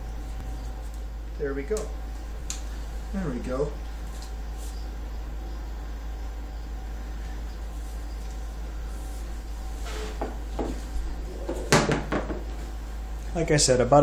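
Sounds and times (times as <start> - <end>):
steady low hum: 0.0 - 14.0
bow tapping wooden floor: 11.4 - 12.5
sharp knock on floor: 11.7 - 12.4.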